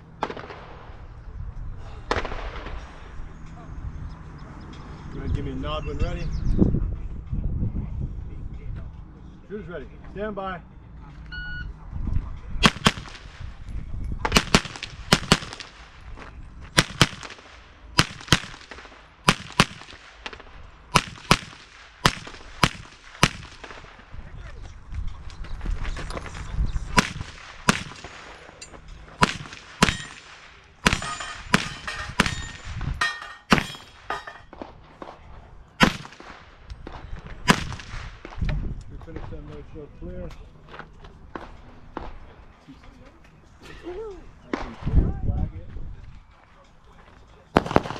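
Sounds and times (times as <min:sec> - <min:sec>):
sharp gunshots: 0:00.2 - 0:01.1, 0:02.0 - 0:03.2, 0:12.6 - 0:13.6, 0:14.2 - 0:16.1, 0:16.7 - 0:24.1, 0:26.9 - 0:28.5, 0:29.1 - 0:35.2, 0:35.8 - 0:38.4, 0:47.6 - 0:47.9.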